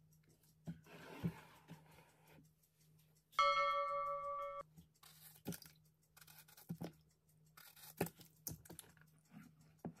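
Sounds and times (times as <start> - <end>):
bell-like chime: 3.4 - 4.7.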